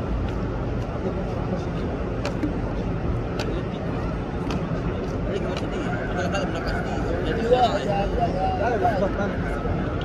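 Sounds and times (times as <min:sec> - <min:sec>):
crowded street noise: 0:00.0 - 0:10.0
traffic rumble: 0:00.0 - 0:10.0.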